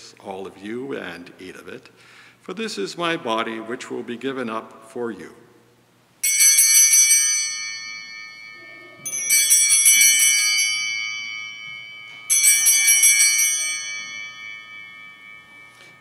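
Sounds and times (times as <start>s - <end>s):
hand bells ringing: 6.2s - 16.0s.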